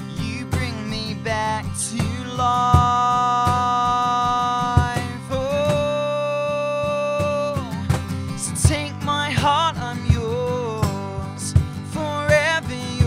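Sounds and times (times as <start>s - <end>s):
man singing: 0.0s - 13.0s
strummed acoustic guitar: 0.0s - 13.0s.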